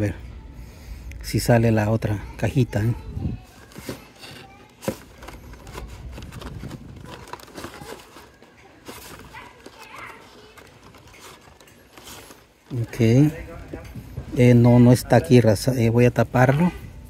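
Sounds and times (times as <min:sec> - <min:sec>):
cardboard rustling: 0:03.4 - 0:13.8
crinkling plastic: 0:03.4 - 0:13.9.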